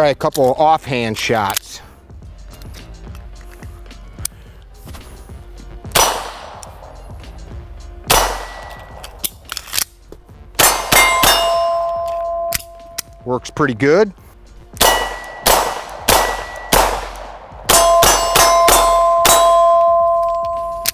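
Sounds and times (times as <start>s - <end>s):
pistol shots: 5.9s - 6.9s, 8.0s - 9.4s, 10.6s - 12.9s, 14.8s - 20.9s
steel targets clanging: 10.6s - 13.6s, 17.7s - 20.9s.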